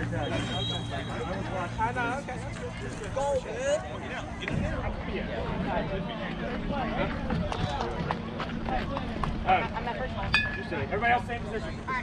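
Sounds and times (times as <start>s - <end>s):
indistinct chatter: 0.0s - 12.0s.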